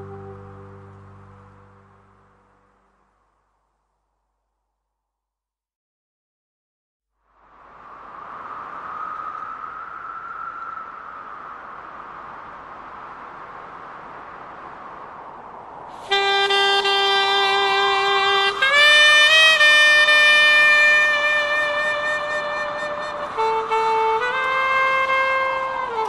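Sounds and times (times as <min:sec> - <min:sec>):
steady background noise: 0:07.2 - 0:16.5
wind instrument holding notes: 0:16.0 - 0:26.0.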